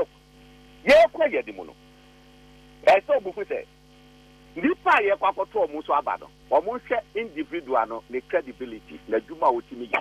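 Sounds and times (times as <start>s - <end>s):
electrical mains hum: 0.0s - 10.0s
man speaking on radio: 0.8s - 1.8s, 2.8s - 3.7s, 4.6s - 10.0s.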